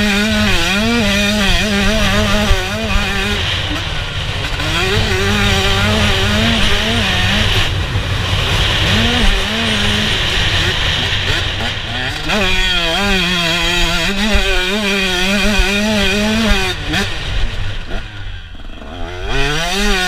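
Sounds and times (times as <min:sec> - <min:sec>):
two-stroke engine revving: 0:00.0 - 0:20.0.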